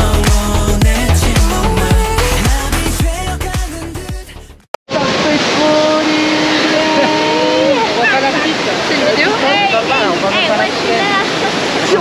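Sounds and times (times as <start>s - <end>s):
waterfall rushing: 4.9s - 12.0s
long held vocal note: 5.4s - 8.0s
excited voices: 5.5s - 12.0s.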